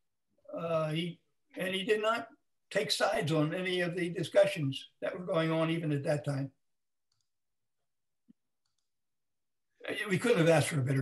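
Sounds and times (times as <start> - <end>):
man speaking: 0.4 - 6.6, 9.8 - 11.0.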